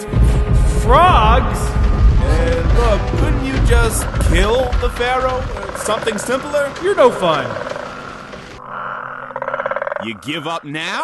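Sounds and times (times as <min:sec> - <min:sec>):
frogs croaking: 0:01.7 - 0:11.0.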